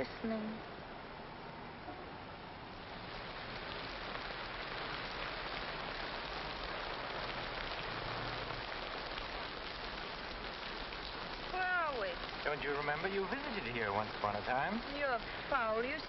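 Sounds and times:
heavy rain falling: 2.7 - 16.0.

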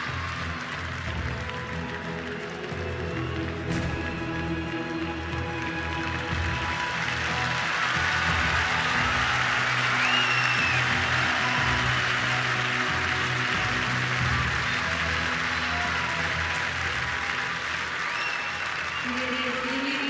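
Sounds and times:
crowd applauding and cheering: 0.0 - 20.0
music playing: 0.0 - 20.0
whistle: 10.0 - 11.0, 18.1 - 19.2.

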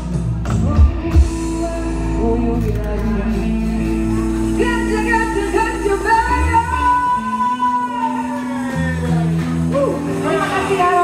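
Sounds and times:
deep bass: 0.0 - 11.0
live band music: 0.0 - 11.0.

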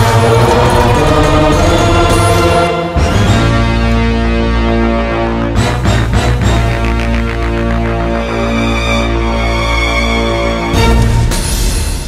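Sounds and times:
dramatic film score with choir: 0.0 - 12.0.

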